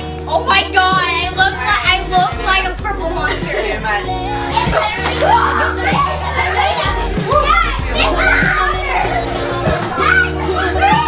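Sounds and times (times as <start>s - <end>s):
children shouting and chattering: 0.0s - 11.0s
loud party music: 0.0s - 11.0s.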